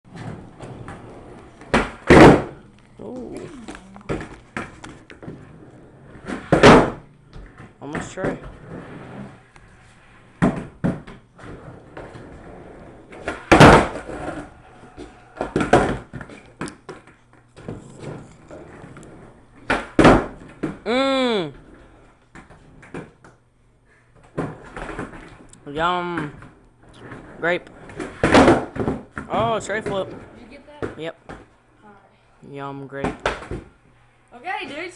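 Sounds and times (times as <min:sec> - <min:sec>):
skateboard knocking on wooden floor: 0:00.1 - 0:02.6, 0:06.2 - 0:08.5, 0:10.4 - 0:12.3, 0:13.1 - 0:14.4, 0:15.0 - 0:18.2, 0:19.6 - 0:20.8, 0:27.8 - 0:31.5.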